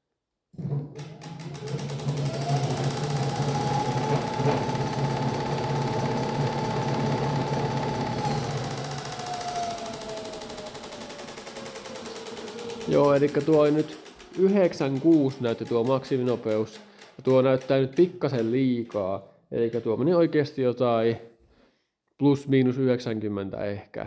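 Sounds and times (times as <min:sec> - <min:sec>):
electric motor whine: 0:01.0 - 0:16.2
low hum: 0:03.0 - 0:14.4.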